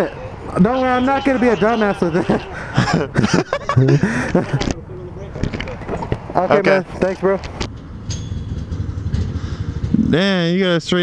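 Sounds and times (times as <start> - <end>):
go-kart engine idling: 7.9 - 11.0.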